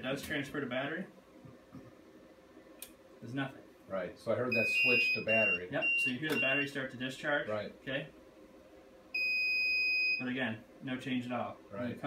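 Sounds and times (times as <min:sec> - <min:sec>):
high-pitched alarm beep: 0:04.5 - 0:06.8, 0:09.2 - 0:10.2.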